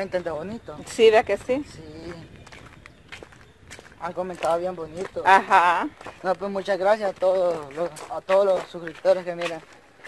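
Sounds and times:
person's voice: 0.0 - 2.3, 4.0 - 9.7
footsteps on dry leaves and twigs: 0.0 - 10.0.

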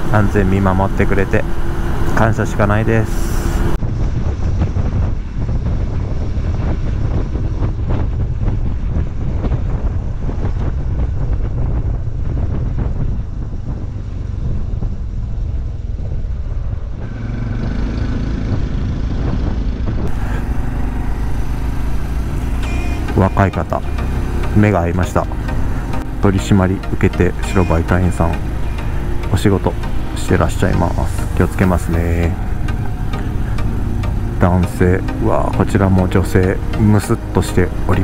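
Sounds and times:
motorcycle engine rumble: 0.0 - 38.0
wind on microphone: 3.4 - 22.5.

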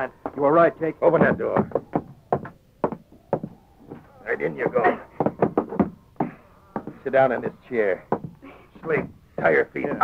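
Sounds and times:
dialogue: 0.0 - 10.0
knocking: 1.0 - 10.0.

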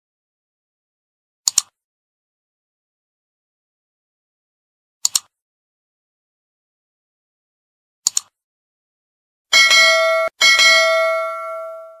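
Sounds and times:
notification bell chime: 9.6 - 12.0.

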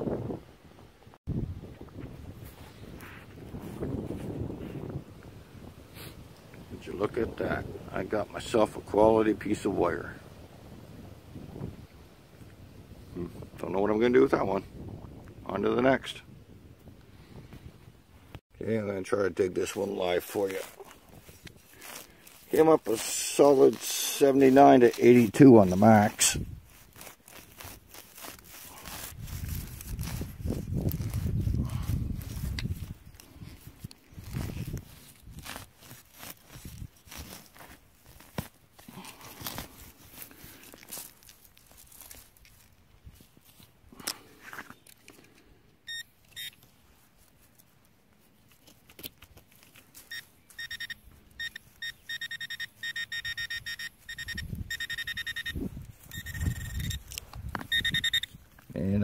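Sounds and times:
hand tool digging in soil: 19.7 - 45.2, 53.9 - 58.8
metal detector beeping: 45.8 - 46.7, 50.0 - 58.4.

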